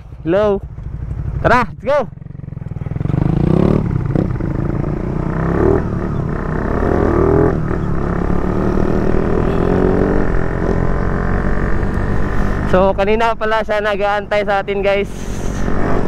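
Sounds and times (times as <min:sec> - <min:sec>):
motorcycle engine accelerating: 0:00.0 - 0:13.0, 0:14.9 - 0:16.0.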